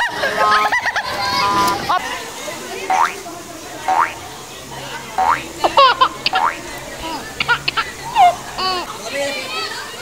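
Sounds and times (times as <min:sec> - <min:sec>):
cartoon boing sound effects: 0:02.9 - 0:03.2, 0:03.9 - 0:04.2, 0:05.2 - 0:05.4, 0:06.2 - 0:06.6.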